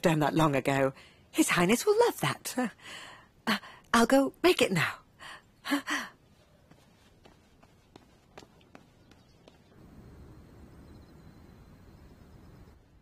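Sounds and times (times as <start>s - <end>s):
faint steady low hiss: 9.5s - 13.0s.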